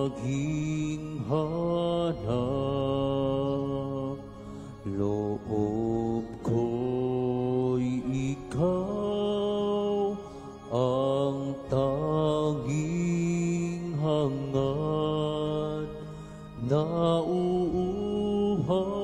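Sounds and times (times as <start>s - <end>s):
low musical accompaniment: 0.0s - 19.0s
person singing a slow hymn: 0.0s - 19.0s.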